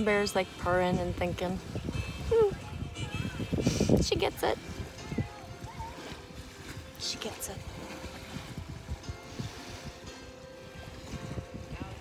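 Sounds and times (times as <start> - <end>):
faint song playing: 0.0 - 12.0
wind buffeting microphone: 0.0 - 12.0.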